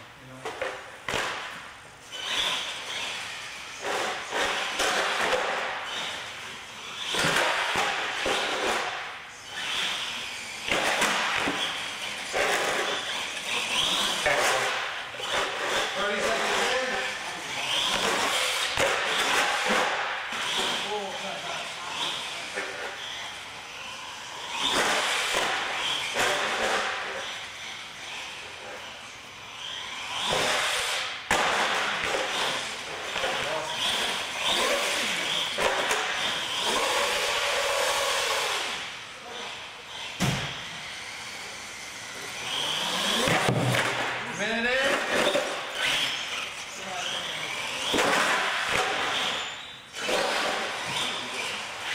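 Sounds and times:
toy truck driving on concrete: 0.2s - 51.9s
voices echoing in hall: 15.7s - 18.2s.

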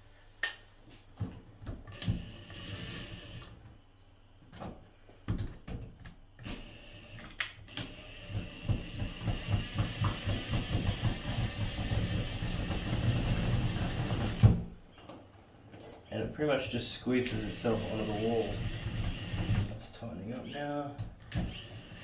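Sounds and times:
cordless drill driving screw: 17.3s - 19.7s.

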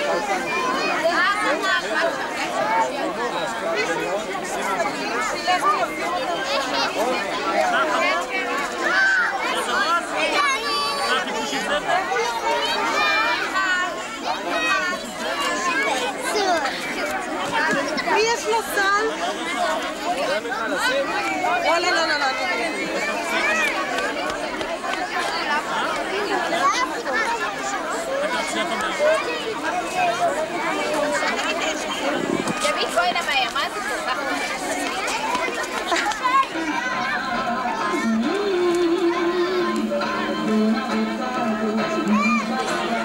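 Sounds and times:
crowd chatter with children's voices: 0.0s - 43.0s.

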